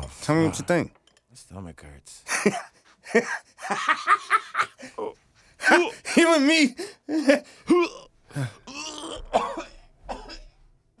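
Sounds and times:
man coughing harshly: 0:07.3 - 0:10.6.

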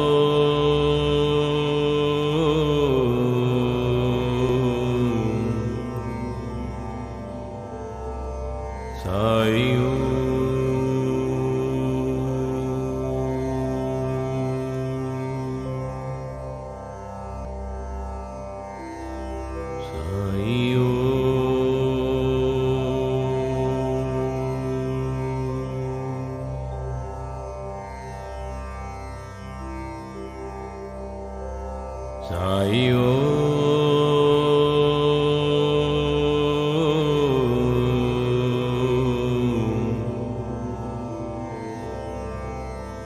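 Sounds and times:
person chanting: 0:00.0 - 0:07.6, 0:08.9 - 0:16.5, 0:19.8 - 0:27.2, 0:32.2 - 0:43.0
steady musical background: 0:00.0 - 0:43.0.

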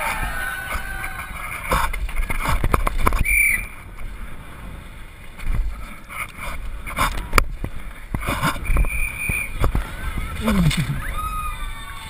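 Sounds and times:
wind buffeting a camera: 0:00.0 - 0:11.8
bike rattling over bumps: 0:00.8 - 0:10.8.

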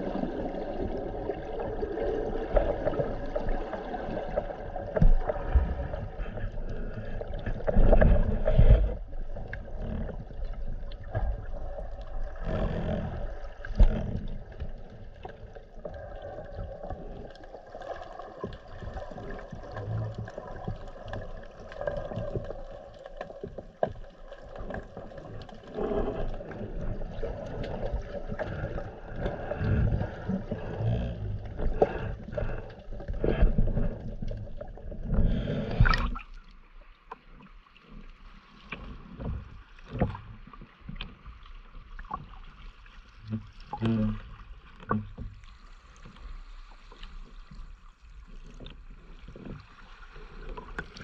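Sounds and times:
muffled underwater water rushing: 0:00.0 - 0:51.0.

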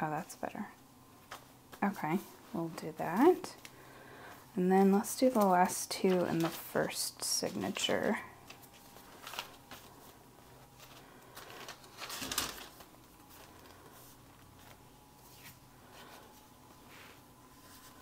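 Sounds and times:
paper and card rustling: 0:04.8 - 0:16.9.

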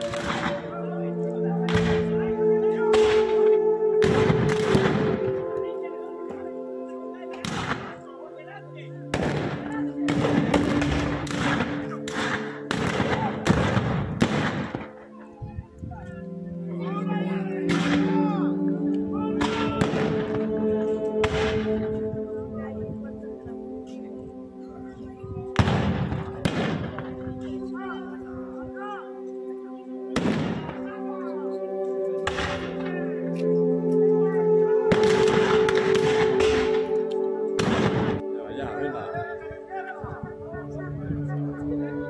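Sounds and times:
gunshot: 0:00.0 - 0:00.6, 0:01.7 - 0:02.1, 0:02.9 - 0:03.4, 0:04.0 - 0:05.2, 0:07.4 - 0:07.9, 0:09.1 - 0:14.9, 0:17.7 - 0:18.2, 0:19.4 - 0:20.4, 0:21.2 - 0:21.7, 0:25.6 - 0:27.0, 0:30.2 - 0:30.8, 0:32.2 - 0:32.7, 0:34.9 - 0:36.9, 0:37.6 - 0:38.2
rifle shots with echo: 0:00.0 - 0:00.7, 0:01.7 - 0:02.1, 0:02.9 - 0:05.4, 0:07.4 - 0:08.0, 0:09.1 - 0:15.0, 0:19.4 - 0:20.5, 0:21.2 - 0:21.8, 0:25.6 - 0:27.1, 0:30.1 - 0:30.8, 0:32.2 - 0:32.8, 0:34.9 - 0:36.9, 0:37.6 - 0:38.2
held musical tones: 0:00.0 - 0:42.0.

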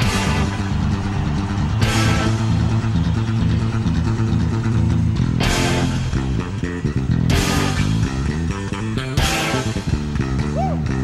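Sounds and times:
bass guitar: 0:00.0 - 0:11.0
distorted electric guitar riff: 0:00.0 - 0:11.0.

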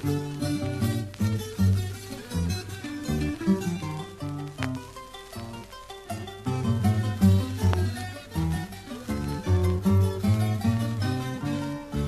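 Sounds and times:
baroque chamber music: 0:00.0 - 0:12.0
guitar plucking notes: 0:00.0 - 0:12.0.

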